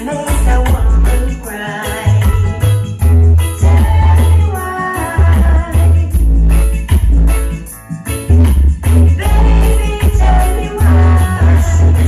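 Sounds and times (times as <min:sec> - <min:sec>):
loud reggae music with heavy bass: 0:00.0 - 0:12.0.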